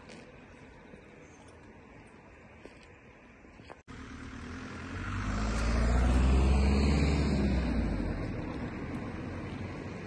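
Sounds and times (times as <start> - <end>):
car driving past: 3.9 - 10.0.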